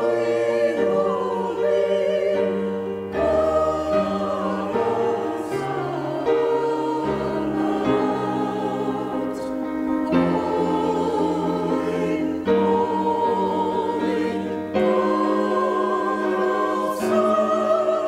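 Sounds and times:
choir singing a slow hymn: 0:00.0 - 0:18.0.

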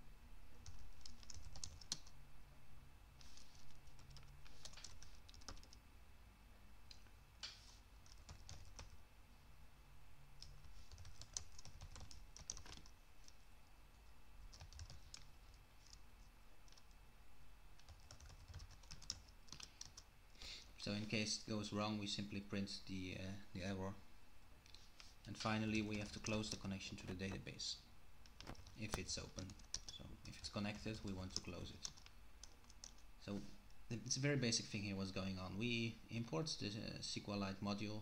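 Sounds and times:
computer keyboard typing: 0:00.6 - 0:02.1, 0:03.2 - 0:05.8, 0:08.0 - 0:09.0, 0:10.4 - 0:13.4, 0:14.4 - 0:16.0, 0:16.6 - 0:17.0, 0:17.8 - 0:20.1, 0:28.2 - 0:33.0.

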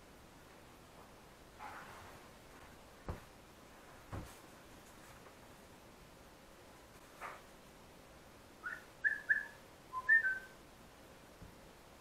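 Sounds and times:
soft rustle: 0:00.5 - 0:05.7
kestrel calling: 0:08.6 - 0:10.6.

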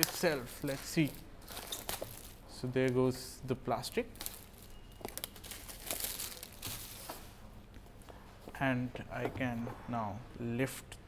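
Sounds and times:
plastic wrap crinkling: 0:00.0 - 0:02.4, 0:03.9 - 0:07.4.

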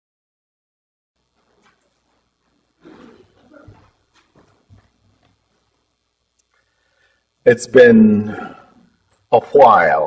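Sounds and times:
rough vocal noise: 0:02.8 - 0:03.9
bumps on microphone: 0:02.8 - 0:05.0.

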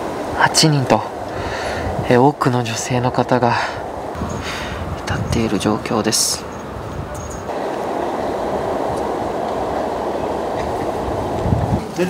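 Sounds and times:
city street rumble: 0:00.0 - 0:12.0.

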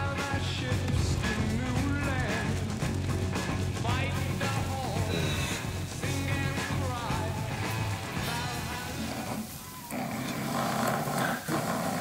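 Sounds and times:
person snoring: 0:08.2 - 0:12.0.

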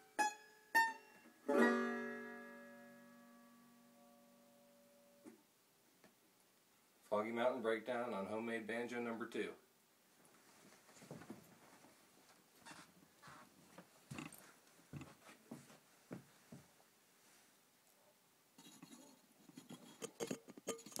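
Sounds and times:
knocks and rustles of movement: 0:10.2 - 0:17.6.

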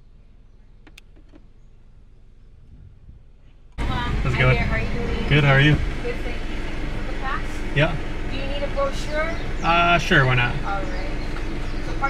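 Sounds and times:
car idling: 0:00.0 - 0:12.0
people talking: 0:03.8 - 0:11.3.

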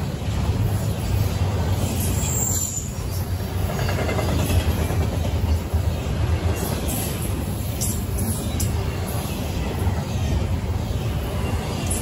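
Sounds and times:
freight train wheels rumbling: 0:00.0 - 0:12.0.

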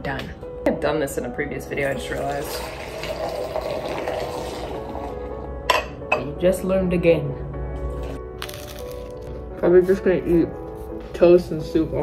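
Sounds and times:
tea pouring and splashing: 0:01.8 - 0:05.4.

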